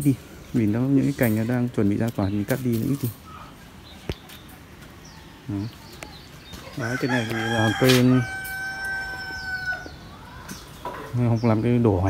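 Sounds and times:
small birds chirping: 0.0s - 12.0s
rooster crowing: 6.7s - 10.3s.

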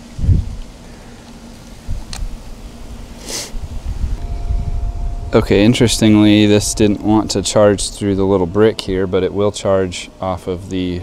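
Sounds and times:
low rumble: 1.9s - 9.4s.

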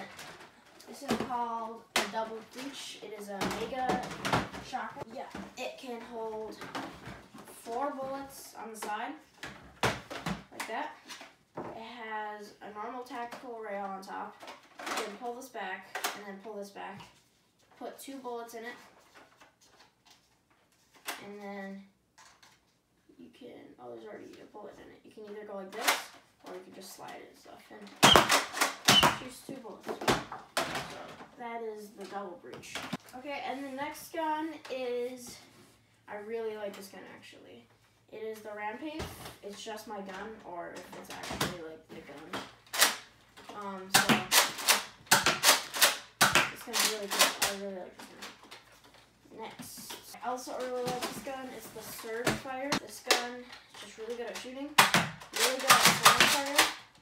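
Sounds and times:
plastic clicks and rustles: 22.2s - 22.8s
toy blaster plastic clacks: 43.9s - 47.6s, 53.1s - 56.9s.

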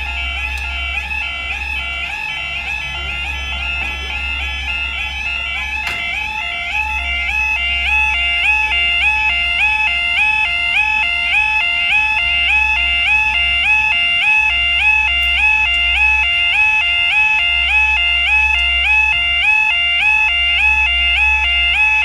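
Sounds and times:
level crossing two-tone alarm: 0.0s - 22.0s.

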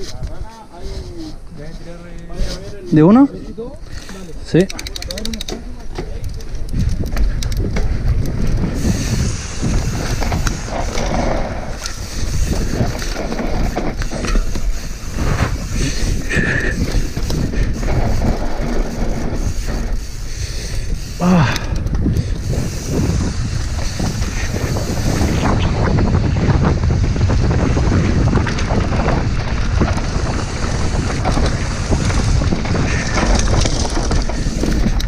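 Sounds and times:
wind on microphone: 0.0s - 35.0s
bike rattle over bumps: 1.6s - 35.0s
quick run of clicks: 3.9s - 25.8s, 27.8s - 35.0s
tyre rumble on dirt trail: 5.6s - 35.0s.

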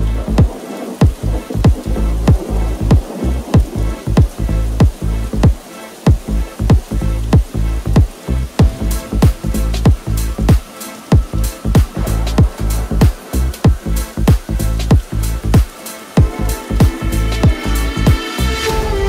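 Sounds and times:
chill electronic music: 0.0s - 19.0s
kick drum: 0.4s - 18.2s
hi-hat ticks: 7.4s - 18.4s.

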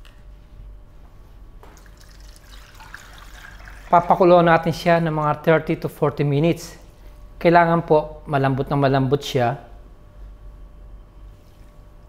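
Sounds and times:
water pouring into metal pan: 1.8s - 4.2s.

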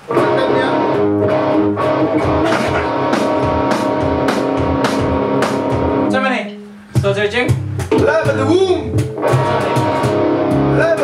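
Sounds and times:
bass guitar: 0.0s - 11.0s
electric guitar strumming: 0.0s - 11.0s
electronic drum beat: 0.1s - 6.2s, 6.9s - 11.0s.

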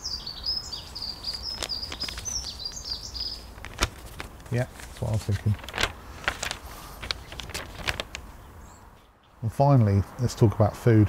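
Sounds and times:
small clicks and rustles: 1.2s - 8.4s.

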